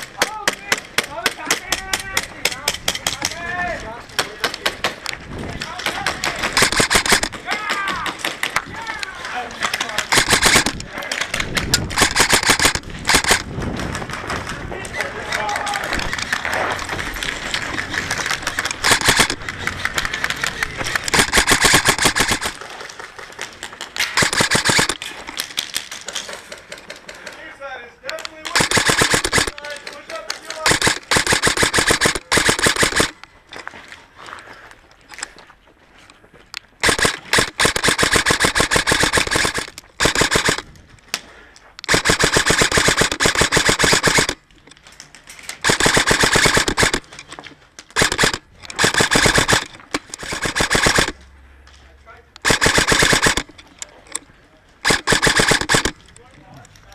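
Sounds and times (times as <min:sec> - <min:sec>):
airsoft guns firing bursts: 0:05.6 - 0:08.6, 0:09.3 - 0:14.6, 0:17.2 - 0:22.8, 0:24.0 - 0:25.0, 0:28.1 - 0:33.2, 0:36.8 - 0:40.7, 0:41.8 - 0:44.4, 0:45.6 - 0:47.2, 0:47.9 - 0:51.2, 0:52.4 - 0:53.6, 0:54.8 - 0:56.0.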